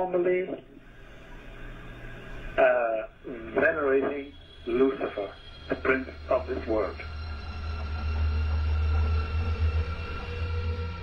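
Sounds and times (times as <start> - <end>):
faint steady tones: 0.0 - 11.0
dark music low drone: 0.8 - 11.0.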